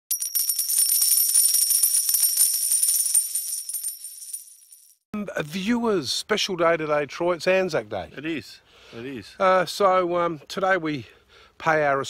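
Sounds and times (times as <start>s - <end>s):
metallic clinks: 0.1s - 5.0s.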